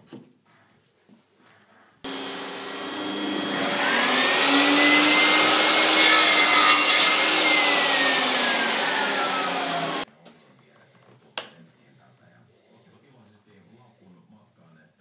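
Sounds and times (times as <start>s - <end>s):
miter saw motor whining: 2.1s - 10.0s
saw blade cutting plywood: 2.1s - 10.1s.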